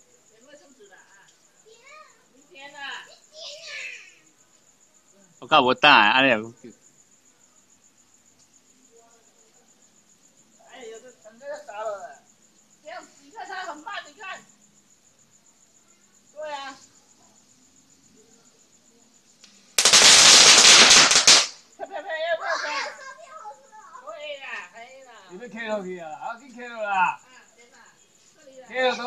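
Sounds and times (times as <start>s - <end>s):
cricket chirping: 0.0s - 29.0s
firecrackers crackling: 19.4s - 21.9s.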